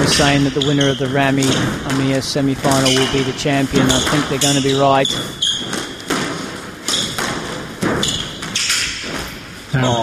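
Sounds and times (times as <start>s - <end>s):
squash ball knocks: 0.0s - 9.3s.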